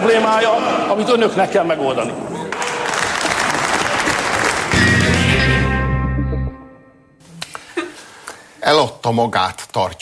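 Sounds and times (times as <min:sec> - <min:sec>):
people applauding: 0:02.5 - 0:05.6.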